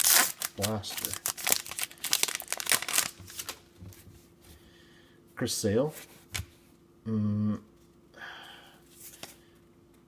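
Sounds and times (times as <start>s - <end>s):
wrapper crinkling: 0.0s - 3.6s
card handling sounds: 0.0s - 4.0s.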